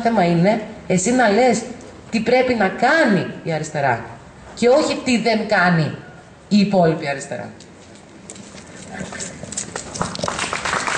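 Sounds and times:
audience applauding: 9.8 - 10.9.

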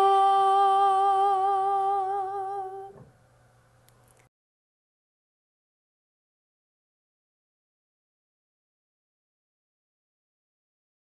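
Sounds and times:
woman singing a long note: 0.0 - 3.0.

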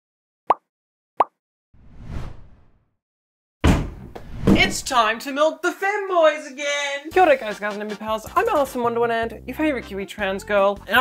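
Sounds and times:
pop sound effects: 0.5 - 1.4.

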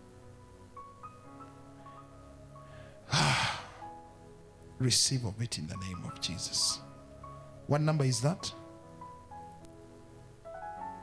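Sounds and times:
soft keyboard music: 0.0 - 11.0
man sighing into microphone: 3.0 - 3.9.

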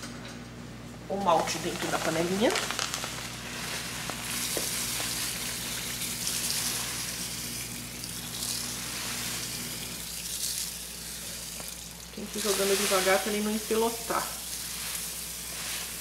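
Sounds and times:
low steady hum: 0.0 - 16.0
grain pouring into water: 1.6 - 16.0.

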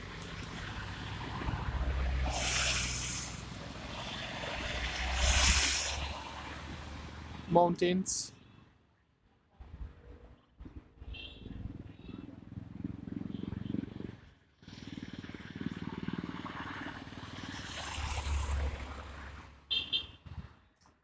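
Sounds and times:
car driving past: 0.0 - 7.5
road traffic noise: 0.0 - 21.0.

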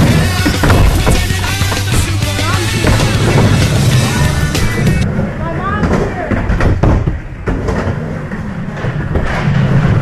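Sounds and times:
skateboard rolling on concrete: 0.0 - 10.0.

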